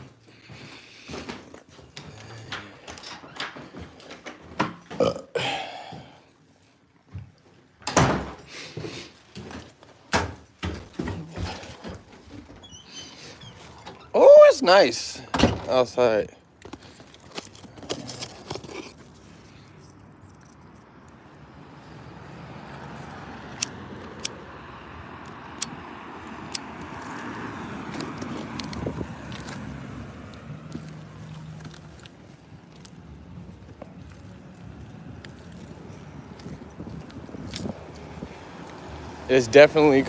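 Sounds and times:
faint street hum: 0.0 - 40.0
light clicks and jingles: 30.3 - 40.0.

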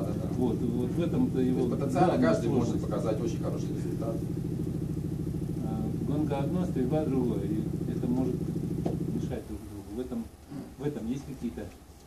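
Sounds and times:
low pulsing hum: 0.0 - 11.4.

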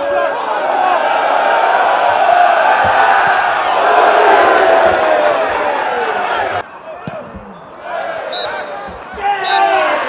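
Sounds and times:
football crowd noise: 0.0 - 10.0
players shouting: 0.0 - 10.0
dull ball thuds: 2.8 - 3.5
short high whistle peeps: 8.3 - 8.8.

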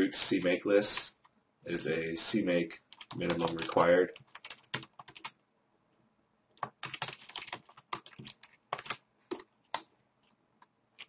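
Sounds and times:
typing on computer keyboard: 2.9 - 5.4, 6.6 - 9.9.

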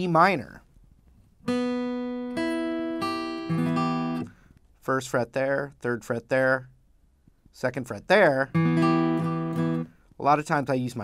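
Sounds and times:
acoustic guitar chord strummed: 1.5 - 4.4, 8.5 - 10.0.

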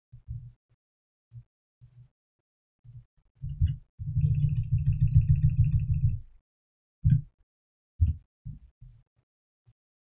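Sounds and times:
computer keyboard typing: 4.2 - 6.2.

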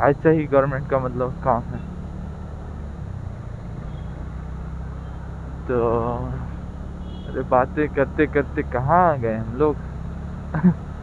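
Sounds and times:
road and wind noise: 0.0 - 11.0
scooter engine running: 0.2 - 11.0.

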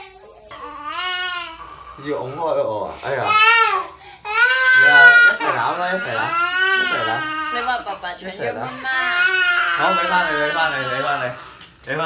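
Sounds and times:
toddler crying: 0.0 - 8.0, 8.6 - 11.4.

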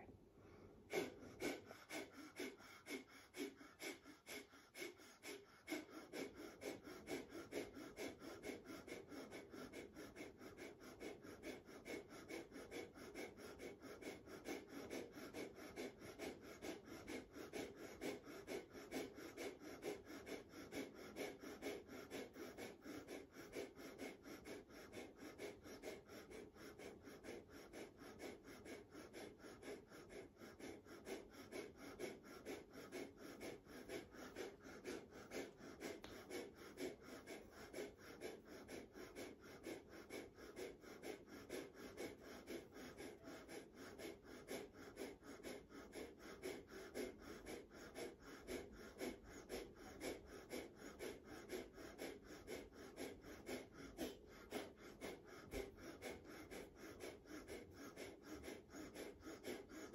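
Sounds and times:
rapid forced nasal breaths: 0.0 - 59.9.

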